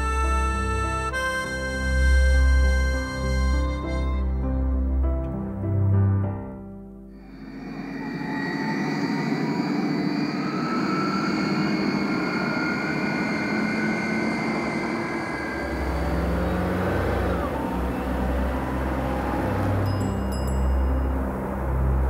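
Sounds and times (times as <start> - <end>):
deep rumble: 7.2 - 22.0
jet aircraft roaring past: 7.2 - 22.0.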